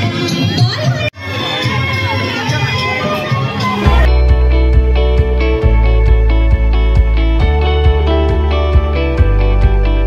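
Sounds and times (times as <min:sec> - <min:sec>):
crowd talking and calling out: 0:00.0 - 0:08.9
music playing: 0:00.0 - 0:10.0.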